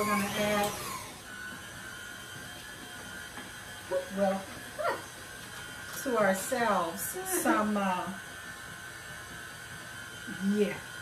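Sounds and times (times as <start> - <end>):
stand mixer motor whining: 0.0 - 11.0.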